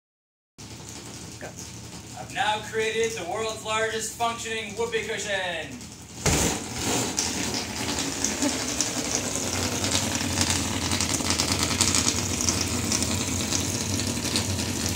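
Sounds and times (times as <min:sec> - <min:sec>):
air rattling out of valve: 0:06.0 - 0:14.9
body thumping on air mattress: 0:06.2 - 0:07.0.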